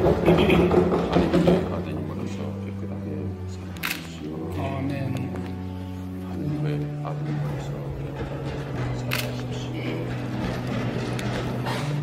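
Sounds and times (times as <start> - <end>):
church music with low held notes: 0.4 - 12.0.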